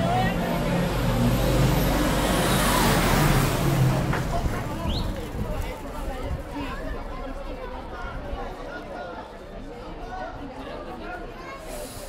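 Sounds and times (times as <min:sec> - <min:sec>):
fire engine driving past: 0:00.0 - 0:06.2.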